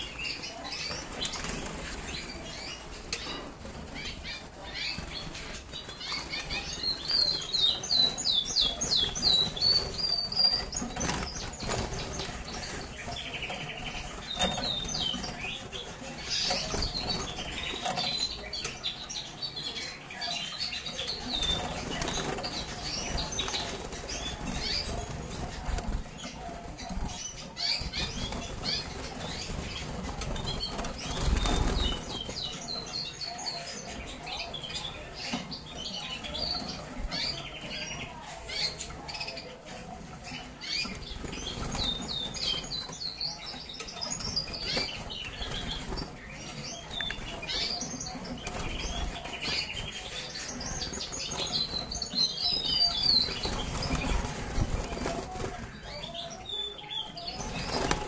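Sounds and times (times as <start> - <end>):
canaries chirping: 0.0 - 58.0.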